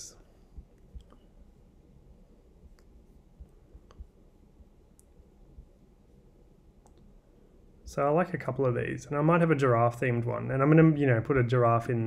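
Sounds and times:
faint computer mouse clicks: 6.8s - 7.1s.

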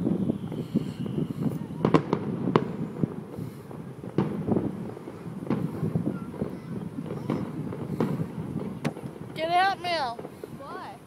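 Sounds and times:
distant fireworks bangs: 0.0s - 11.0s.

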